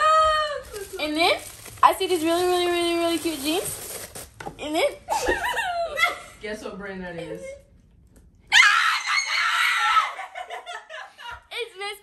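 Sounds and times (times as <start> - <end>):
excited high-pitched scream: 8.5 - 10.4.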